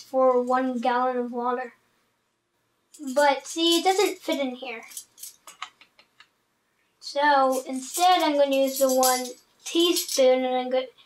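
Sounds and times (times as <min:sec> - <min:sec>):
metal measuring spoons clinking: 0:02.9 - 0:05.6, 0:07.5 - 0:10.3.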